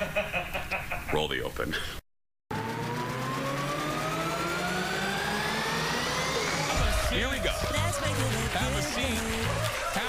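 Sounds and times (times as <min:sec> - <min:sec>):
electronic riser sweeping upward: 0:02.5 - 0:09.8.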